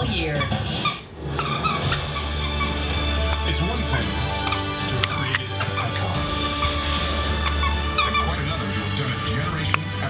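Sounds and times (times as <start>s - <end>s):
squeaky toy squeaks: 0.0s - 3.6s, 4.3s - 8.6s
television commercial music: 0.0s - 10.0s.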